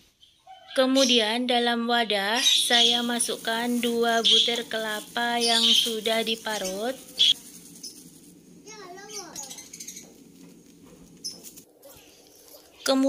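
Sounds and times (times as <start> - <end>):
plastic bag crinkling: 2.6 - 13.0.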